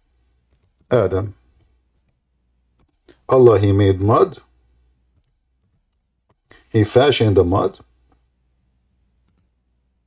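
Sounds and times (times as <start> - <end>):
soft clicks: 1.6 - 3.2, 9.2 - 9.6.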